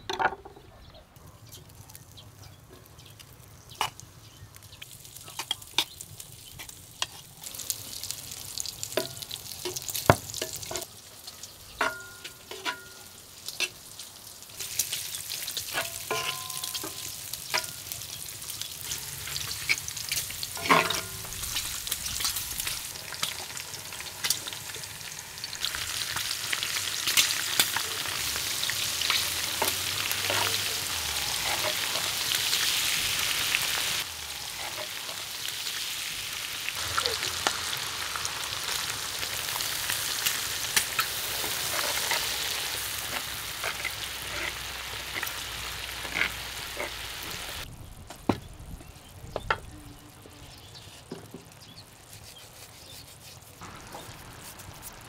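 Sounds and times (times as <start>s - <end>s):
fat sizzling in a pan: 3.2s - 47.7s, 50.4s - 55.0s
spatula scraping and knocking pan: 15.6s - 17.8s, 19.7s - 21.4s.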